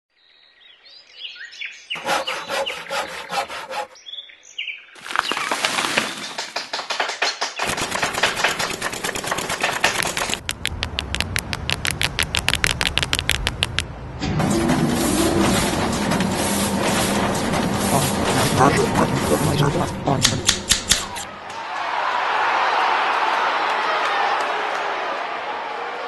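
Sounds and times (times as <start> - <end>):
rhythmic clattering: 6.8 - 13.8, 14.5 - 21.3.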